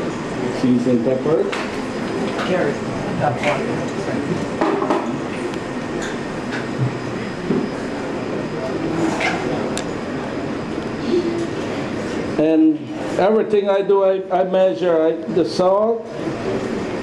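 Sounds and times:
faint indistinct voices: 0.0s - 17.0s
room noise: 0.0s - 17.0s.

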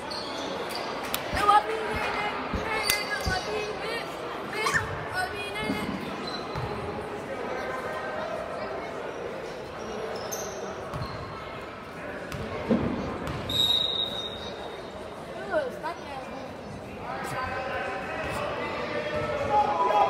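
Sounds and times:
voices talking in echoing gym: 0.0s - 20.0s.

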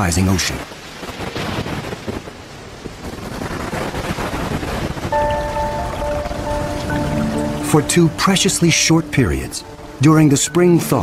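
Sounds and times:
stormy sea rushing water: 0.0s - 11.0s
sustained music notes: 5.1s - 11.0s.

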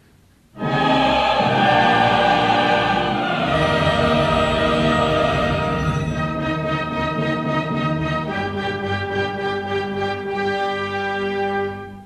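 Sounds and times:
opera chorus with orchestra: 0.6s - 10.3s.

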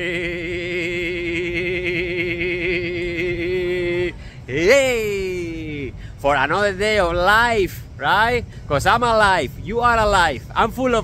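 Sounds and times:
man singing long note with vibrato: 0.0s - 6.4s.

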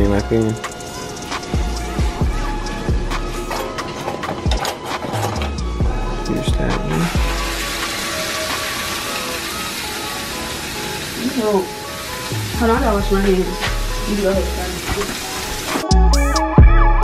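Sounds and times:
background music: 0.0s - 17.0s
utensils clicking and knocking: 3.4s - 5.8s
meat sizzling in a frying pan: 7.1s - 15.8s.

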